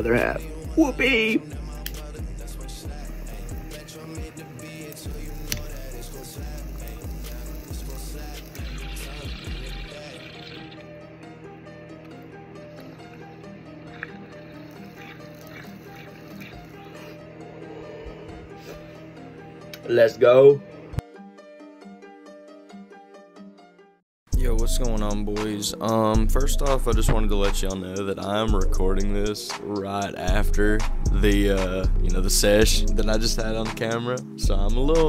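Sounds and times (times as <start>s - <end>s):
background music with deep bass: 0.0s - 22.6s, 24.3s - 35.0s
water bubbling through a bong: 6.6s - 10.9s, 12.8s - 17.1s.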